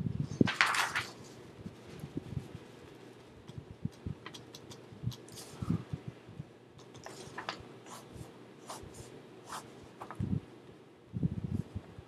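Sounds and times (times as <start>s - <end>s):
paper rustling: 0.3s - 3.2s, 6.8s - 10.3s.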